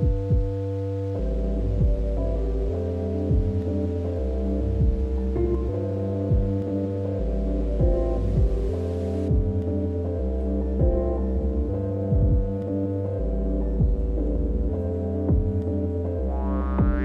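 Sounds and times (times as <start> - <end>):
pitch-dropping kick thump: 0.0 - 0.6, 1.8 - 2.2, 3.3 - 3.7, 4.8 - 5.2, 6.3 - 6.6, 7.8 - 8.7, 9.3 - 9.7, 10.8 - 11.2, 12.1 - 12.6, 15.3 - 15.6, 16.8 - 17.0
deep bass drone: 0.0 - 17.0
held synthesizer chords: 0.0 - 17.0
rising filter sweep: 0.0 - 17.0.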